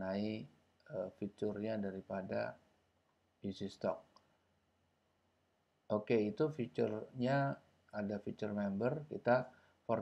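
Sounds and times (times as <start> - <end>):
person speaking: 0.0 - 2.7, 3.4 - 4.2, 5.9 - 10.0
faint click: 4.1 - 4.4.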